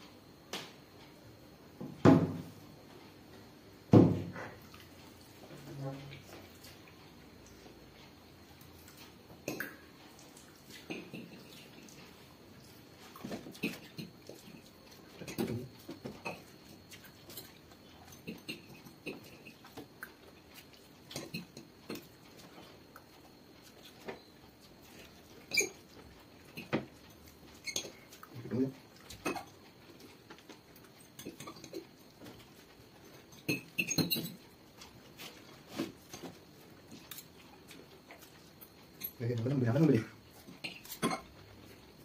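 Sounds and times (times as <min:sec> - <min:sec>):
forks clinking against glass plates: 0:33.4 - 0:34.4.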